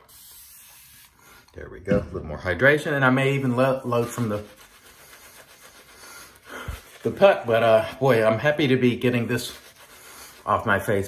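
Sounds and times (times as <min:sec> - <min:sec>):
shaving brush swishing on stubble: 0:03.4 - 0:11.0
person breathing: 0:05.9 - 0:07.0, 0:09.9 - 0:10.5.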